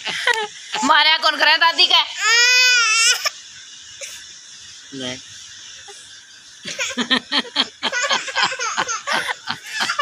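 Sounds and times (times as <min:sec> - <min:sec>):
small child crying: 0:02.2 - 0:03.4.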